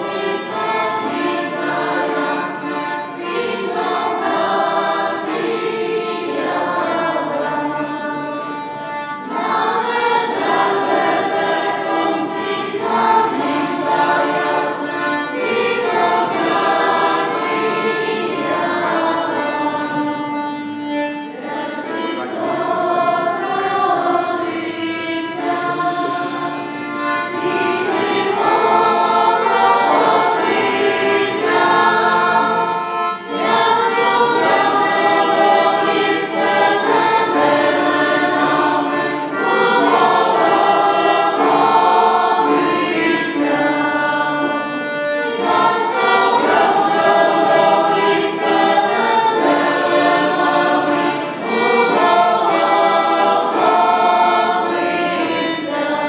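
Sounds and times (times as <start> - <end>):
accordion: 0.0 - 56.0
choir singing carol: 0.0 - 56.0.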